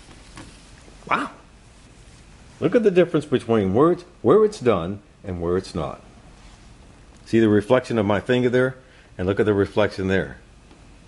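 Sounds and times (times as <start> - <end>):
polishing cloth rubbing: 0.0 - 2.8
man exclaiming: 1.1 - 1.4.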